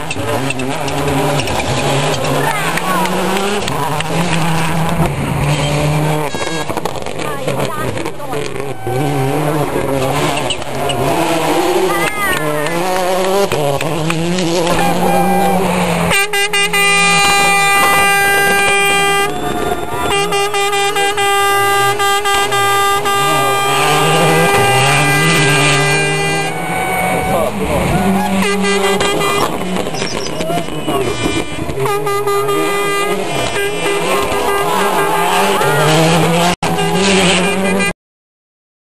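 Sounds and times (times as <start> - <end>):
people's voices: 0.0 - 37.9
rally car engine: 0.0 - 37.9
air horns blaring: 0.0 - 38.0.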